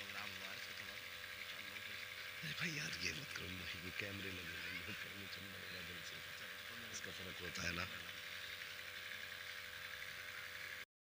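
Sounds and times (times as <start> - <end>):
background hum and hiss: 0.0 - 10.8.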